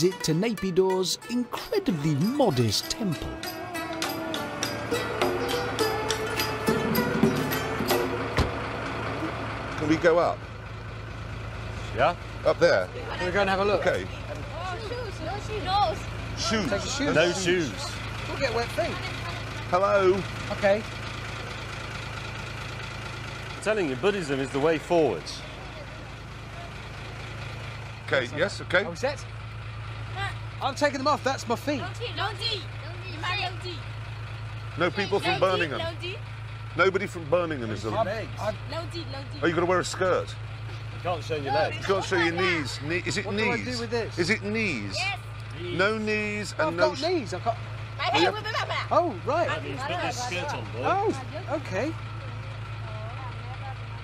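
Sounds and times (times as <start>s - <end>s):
vehicle engine idling: 0.0s - 54.0s.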